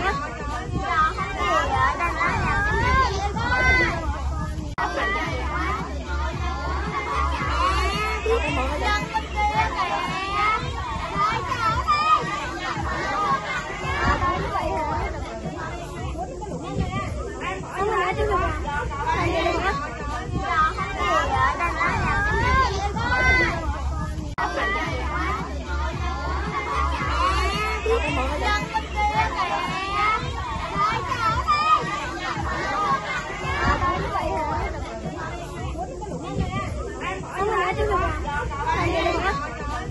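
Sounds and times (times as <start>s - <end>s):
children talking and calling out: 0.0s - 39.9s.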